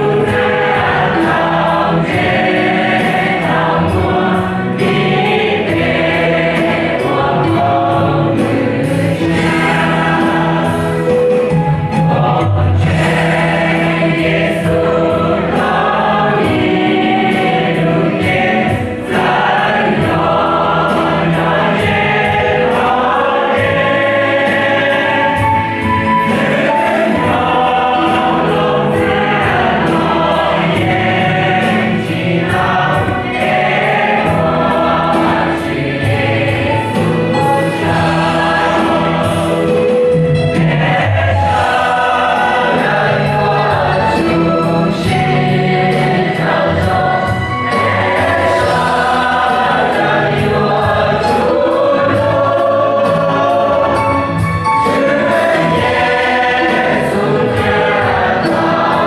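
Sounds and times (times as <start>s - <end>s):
choir singing a hymn: 0.0s - 59.0s
keyboard accompaniment: 0.0s - 59.0s.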